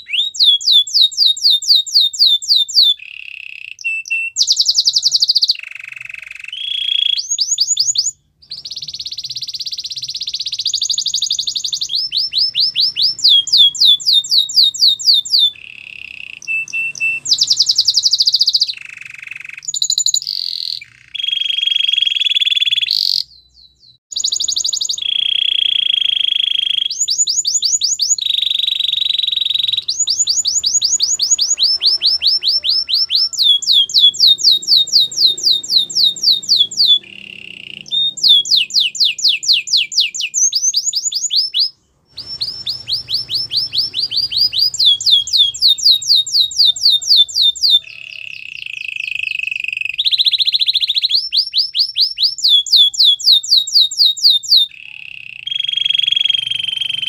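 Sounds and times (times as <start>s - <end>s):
canary singing trills: 0.0s - 57.0s.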